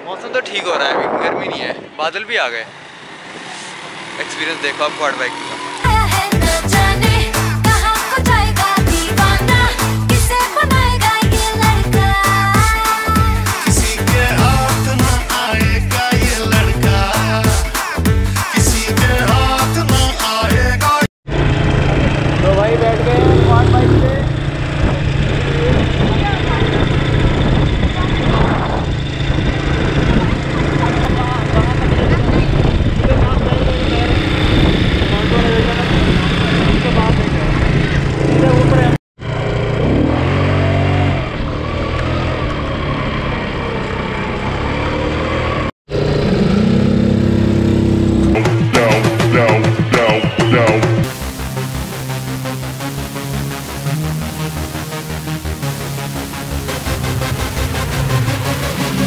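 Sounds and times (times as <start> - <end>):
quad bike engines running: 2.7 - 7.3, 21.3 - 48.4
people's voices: 22.4 - 24.4, 30.0 - 34.3, 48.4 - 51.0.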